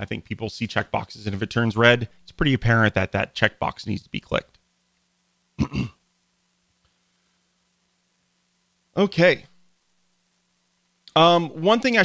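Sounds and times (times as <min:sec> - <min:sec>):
man clearing his throat: 0:05.6 - 0:06.0.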